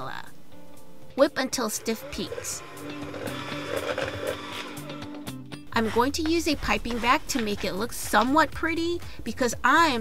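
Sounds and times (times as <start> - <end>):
background music: 0.0 - 10.0
electric hand mixer whipping cream: 1.6 - 7.7.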